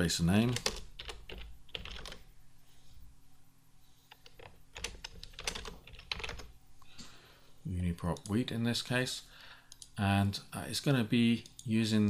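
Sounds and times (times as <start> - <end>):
typing on computer keyboard: 0.5 - 2.2, 4.1 - 6.5.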